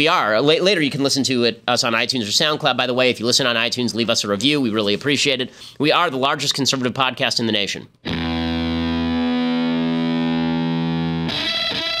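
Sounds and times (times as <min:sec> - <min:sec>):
distorted electric guitar chord: 0:08.1 - 0:12.0.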